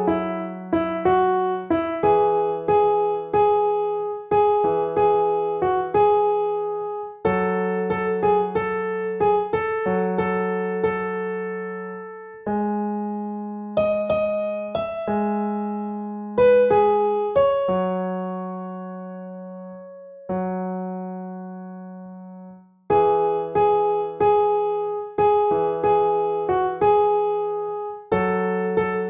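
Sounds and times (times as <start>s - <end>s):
slow piano melody: 0.0s - 29.0s.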